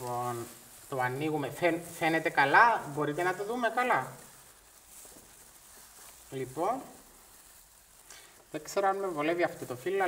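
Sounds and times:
plastic gloves rustling leaves: 0.0s - 10.0s
slight hiss: 0.0s - 10.0s.

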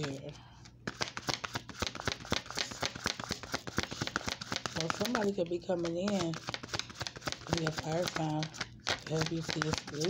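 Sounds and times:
cards shuffling: 0.0s - 10.0s.

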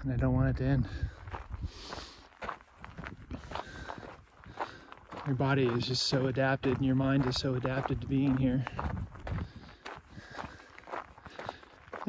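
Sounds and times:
footsteps on rocky dirt trail: 0.4s - 12.0s.

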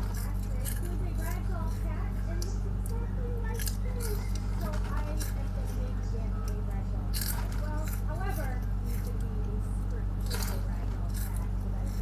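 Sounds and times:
crunchy snack chewing: 0.0s - 12.0s
low electrical hum: 0.0s - 12.0s.

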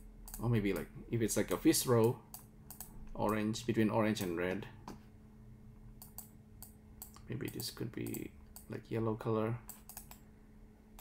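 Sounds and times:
low steady hum: 0.0s - 11.0s
computer input device clicks: 6.0s - 8.7s, 9.7s - 10.2s.

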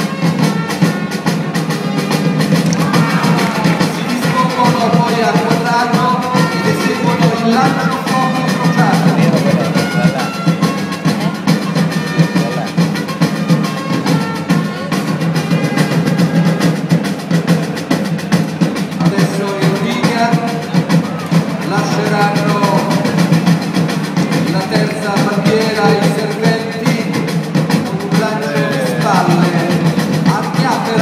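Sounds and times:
busy drum beat with snare rolls: 0.0s - 31.0s.

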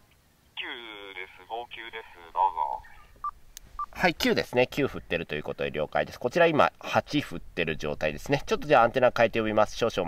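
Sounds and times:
voice over radio speaker: 0.6s - 3.0s.

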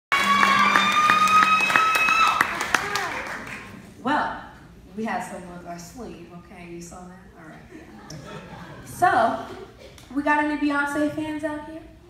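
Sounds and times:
audience clapping and cheering: 0.1s - 3.8s.

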